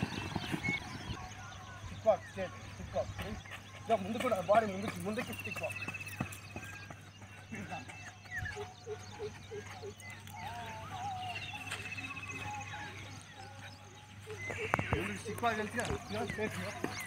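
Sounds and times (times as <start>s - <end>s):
bird chirps: 0.0s - 17.0s
faint voices: 0.0s - 17.0s
bird trilling: 14.3s - 17.0s.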